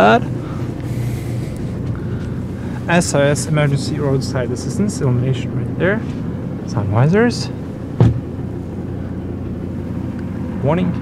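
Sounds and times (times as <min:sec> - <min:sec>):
diesel engine idling: 0:00.0 - 0:11.0
short knock: 0:08.0 - 0:08.2.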